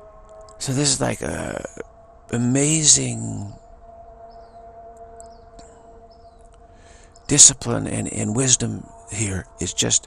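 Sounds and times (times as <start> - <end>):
faint high-pitched sounds: 0.0 - 10.0
two-tone hum: 0.0 - 10.0.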